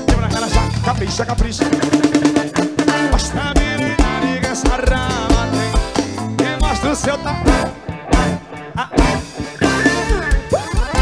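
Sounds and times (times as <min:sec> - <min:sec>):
drum and percussion strokes: 0:00.0 - 0:11.0.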